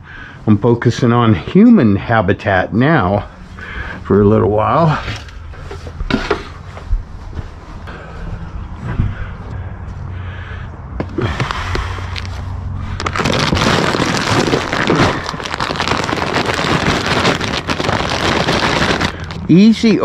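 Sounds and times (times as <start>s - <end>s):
plastic bag rustling and crinkling: 11.4s - 19.5s.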